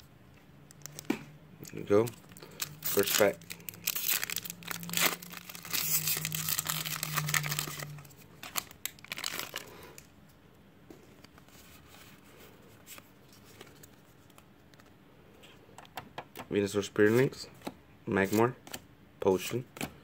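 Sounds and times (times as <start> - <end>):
foil wrapper crinkling and tearing: 1.7 - 10.1.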